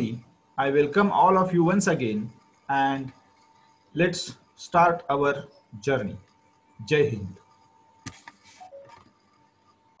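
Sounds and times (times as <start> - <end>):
sharp click: 8.0 - 9.2.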